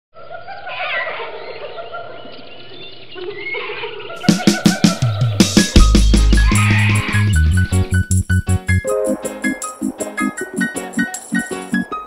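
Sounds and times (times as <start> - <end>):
overlapping animal calls: 3.2 - 7.8.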